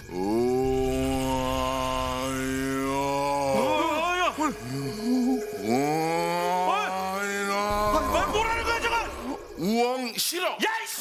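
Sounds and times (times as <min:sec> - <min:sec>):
man wailing: 0:00.1 - 0:09.7.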